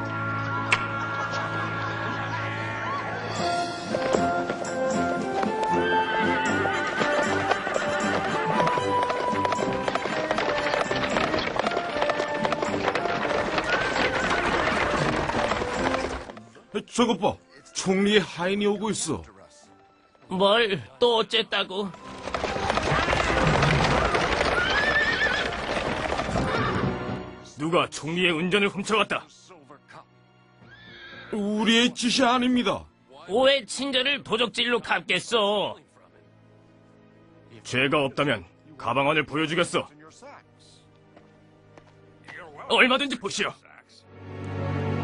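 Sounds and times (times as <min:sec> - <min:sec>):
orchestral music: 0:00.0 - 0:45.0
hooves clip-clopping: 0:03.9 - 0:16.6, 0:21.8 - 0:27.4, 0:41.1 - 0:42.5
horse whinnying: 0:05.6 - 0:16.3, 0:22.2 - 0:27.2, 0:30.6 - 0:31.6
horse neighing: 0:22.8 - 0:27.1, 0:30.6 - 0:31.5.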